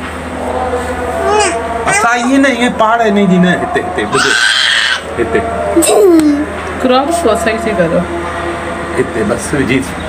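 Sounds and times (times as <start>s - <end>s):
steady low hum: 0.0s - 10.0s
child's high-pitched vocal sound: 1.2s - 2.1s.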